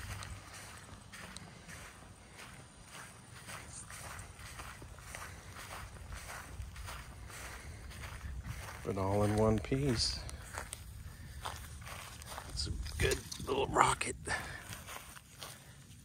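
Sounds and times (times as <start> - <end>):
footsteps on dry grass: 0.0 - 16.0.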